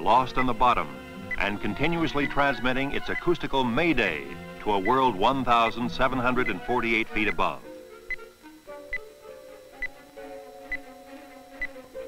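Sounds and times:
low held music tones: 0.0s - 12.0s.

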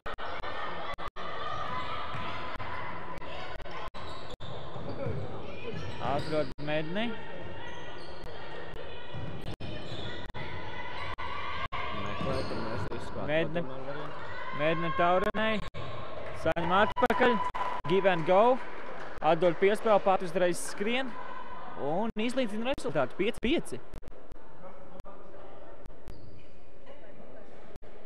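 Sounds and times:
shoe squeaks: 3.9s - 6.8s, 7.5s - 8.6s, 9.6s - 10.3s, 12.0s - 13.0s, 26.1s - 26.7s.

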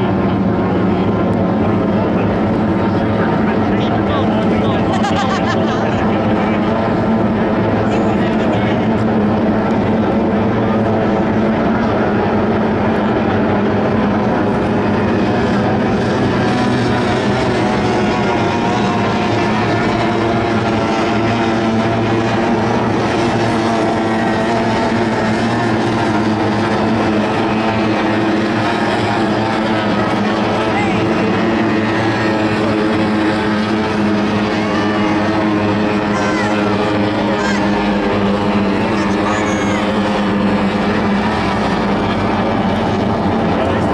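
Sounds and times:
racing powerboat engines droning: 0.0s - 43.9s.

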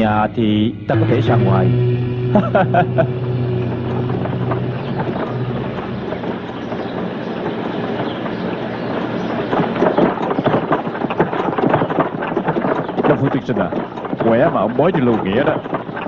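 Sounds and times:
carriage wheels rumbling: 0.0s - 16.0s
hooves clattering: 0.0s - 16.0s
footsteps on dirt road: 0.9s - 16.0s.

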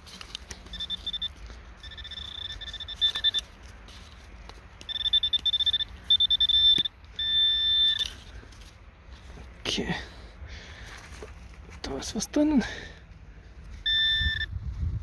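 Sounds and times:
steady beeping tone: 0.6s - 3.6s, 4.8s - 8.3s, 13.8s - 14.6s
rapid high-pitched beeps: 0.7s - 3.5s, 4.9s - 8.1s, 13.9s - 14.5s.

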